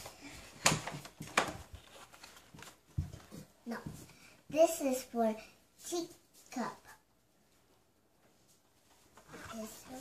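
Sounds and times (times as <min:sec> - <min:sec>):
cardboard and plastic rustling: 0:00.0 - 0:04.2.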